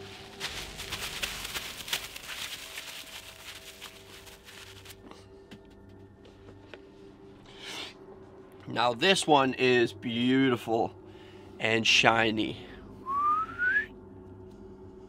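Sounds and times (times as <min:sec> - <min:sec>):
plastic cling film rustling: 0:00.0 - 0:05.1.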